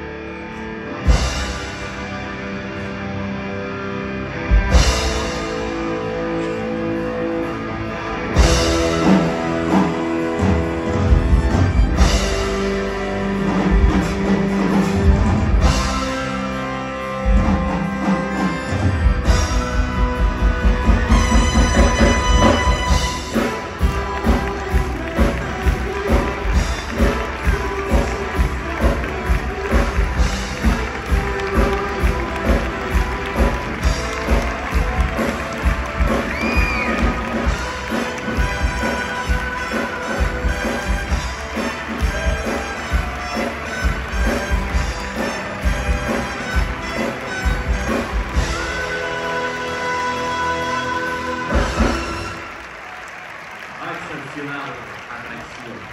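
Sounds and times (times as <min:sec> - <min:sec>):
show music with driving beat: 0:01.0 - 0:02.6, 0:04.4 - 0:53.0.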